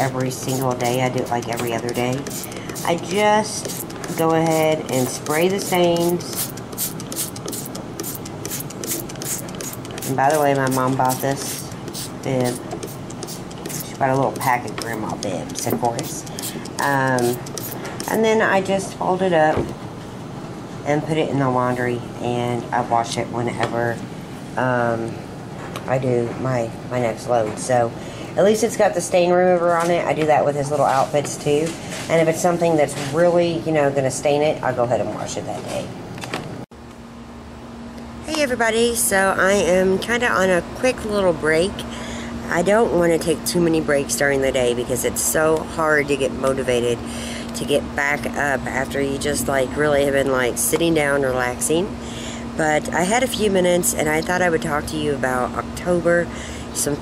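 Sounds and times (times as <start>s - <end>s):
low mechanical hum: 0.0s - 57.0s
spray bottle squirts: 0.5s - 14.0s, 14.7s - 18.2s.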